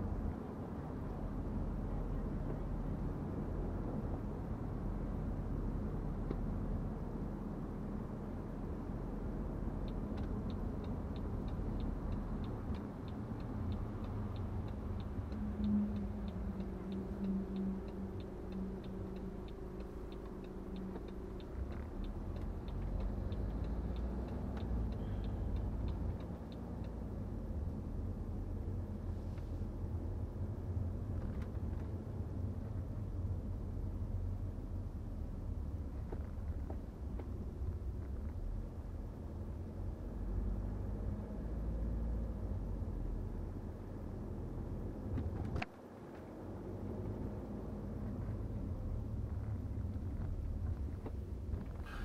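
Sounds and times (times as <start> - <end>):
car road and engine rumble: 0.0 - 52.0
turn signal ticking: 8.4 - 40.0.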